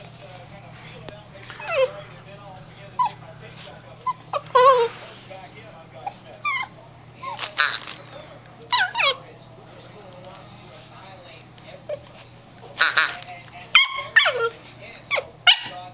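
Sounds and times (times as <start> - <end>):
puppy yipping and barking: 8.7 - 9.8, 13.7 - 15.8.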